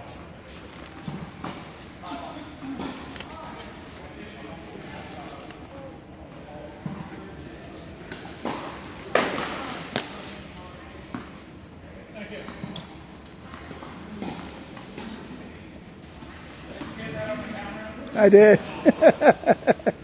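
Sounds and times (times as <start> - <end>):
tennis balls struck by rackets: 8.1 - 10.3.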